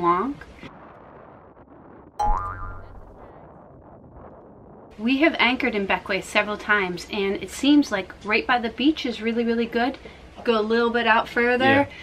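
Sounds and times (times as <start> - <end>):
cartoon boing effect: 2.2 - 3.2.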